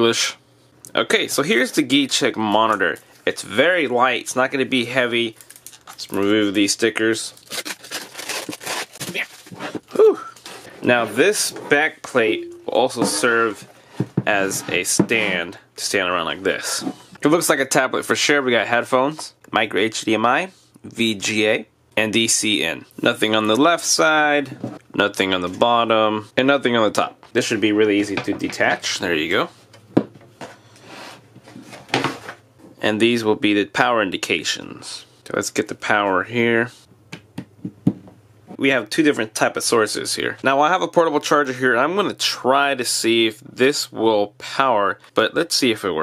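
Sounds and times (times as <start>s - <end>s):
plastic film crinkling: 5.2s - 10.7s.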